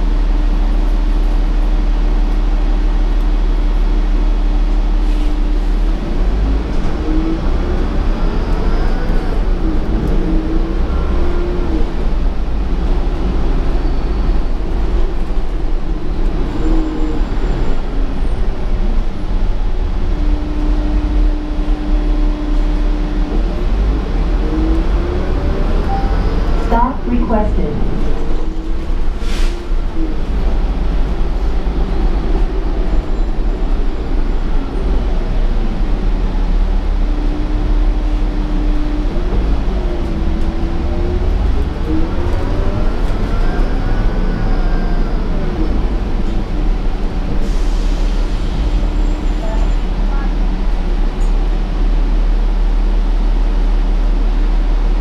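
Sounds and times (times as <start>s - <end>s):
bus engine rumble: 0.0s - 55.0s
transmission whine: 20.3s - 29.2s.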